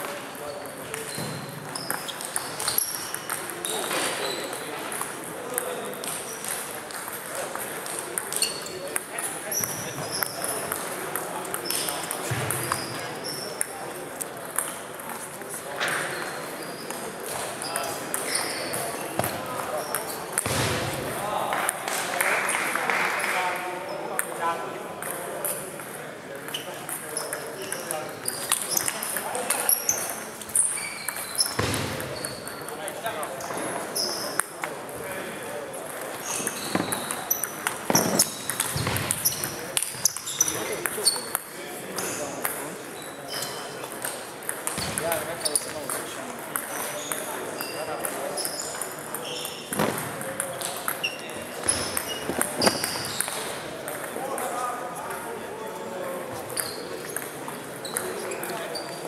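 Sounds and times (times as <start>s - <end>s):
table tennis ball clicks and pings: 0.6s - 16.3s, 16.9s - 20.6s, 25.0s - 35.1s, 35.8s - 54.5s, 56.5s - 59.0s.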